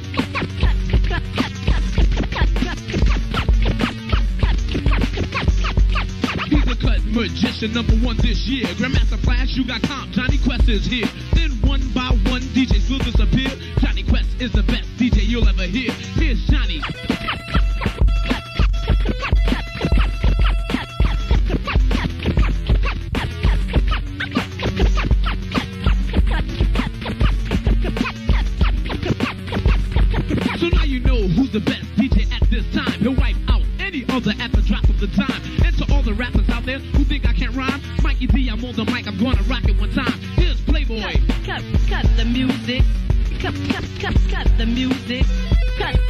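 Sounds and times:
drum machine beat: 0.0s - 46.0s
vinyl scratching: 0.0s - 46.0s.

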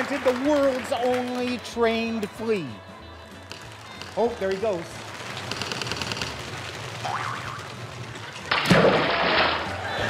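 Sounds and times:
loud splash: 8.5s - 9.9s.

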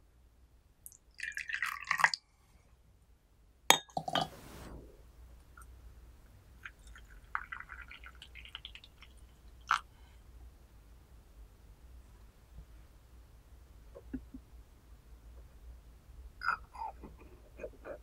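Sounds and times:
hot water trickling into a teapot: 0.9s - 2.2s, 6.6s - 9.9s
tea pouring into a cup: 1.2s - 2.2s, 6.6s - 9.9s.

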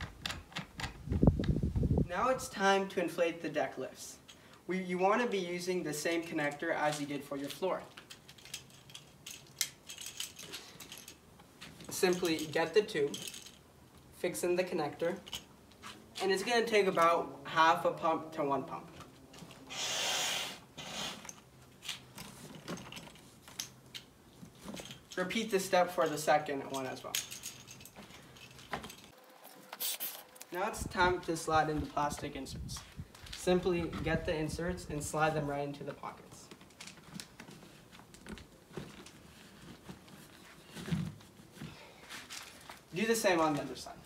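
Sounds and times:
hand air pump rush of air: 19.7s - 21.4s, 29.8s - 30.3s.

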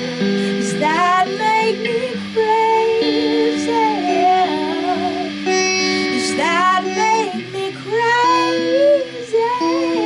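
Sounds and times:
held electric guitar notes: 0.0s - 10.0s
woman singing wordless vocal: 0.2s - 10.0s.

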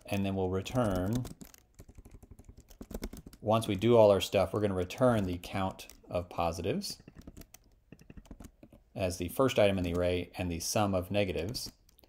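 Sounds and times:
typing on computer keyboard: 0.0s - 12.0s.

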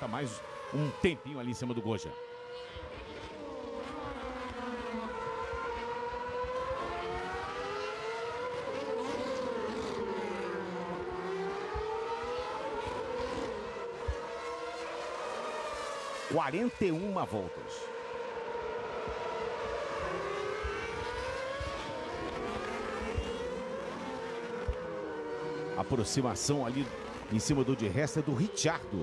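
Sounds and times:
racing car engines at high revs: 0.0s - 29.0s.

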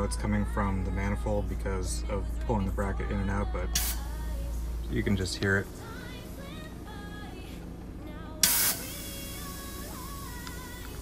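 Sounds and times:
compressed air hissing: 3.8s - 4.8s, 8.4s - 11.0s.

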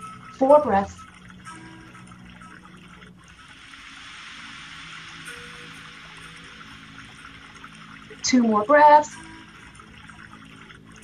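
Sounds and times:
soft low background music: 0.0s - 11.0s
steady rushing hiss: 3.3s - 8.4s.

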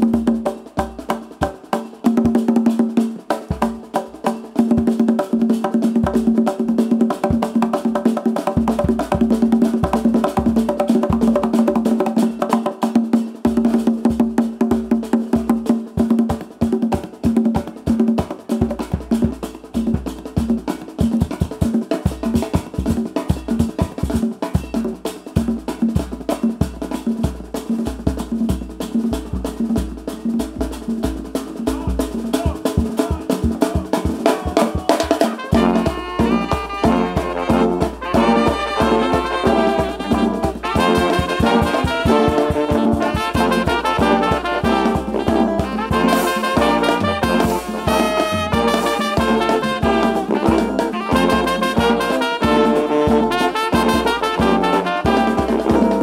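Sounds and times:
fast conga drum strokes: 0.0s - 56.0s
live band music: 0.0s - 56.0s.

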